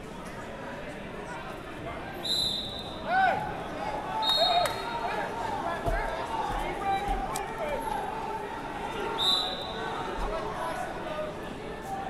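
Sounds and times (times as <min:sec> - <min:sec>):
referee's whistle blasts: 0:02.2 - 0:03.1, 0:04.2 - 0:05.0, 0:09.2 - 0:09.8
shouting and echoing voices: 0:03.0 - 0:12.0.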